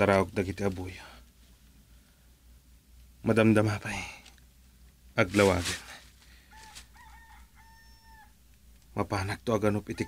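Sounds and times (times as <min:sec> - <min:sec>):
faint rooster crowing: 0:06.3 - 0:08.8, 0:09.7 - 0:10.0.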